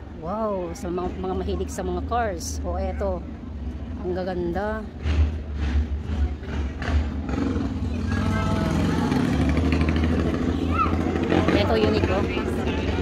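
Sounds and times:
people talking: 0:00.2 - 0:03.2, 0:07.8 - 0:13.0.

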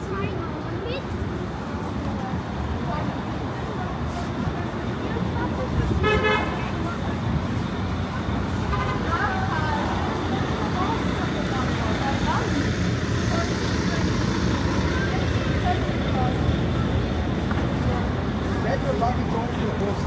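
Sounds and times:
passersby talking faintly: 0:00.0 - 0:20.0
traffic rumble: 0:00.0 - 0:20.0
vehicle horn toot: 0:06.0 - 0:06.6.

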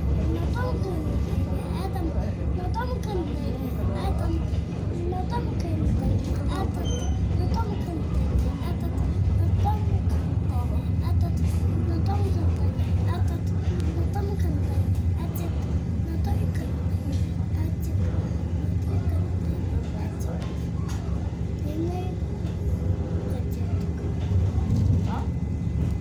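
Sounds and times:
train rumble and hum: 0:00.0 - 0:26.0.

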